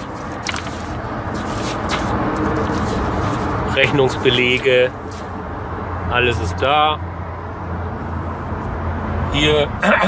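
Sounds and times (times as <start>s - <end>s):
paper rustling: 0.0s - 5.4s
steady background noise: 0.0s - 10.0s.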